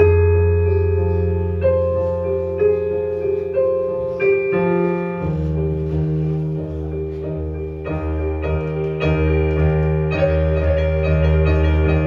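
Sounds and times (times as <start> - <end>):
electric keyboard piano chords: 0.0 - 12.0.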